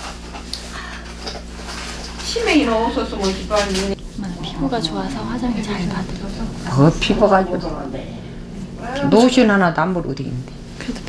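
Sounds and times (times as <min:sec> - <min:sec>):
low room hum: 0:00.0 - 0:11.0
quiet breathing: 0:00.6 - 0:01.2.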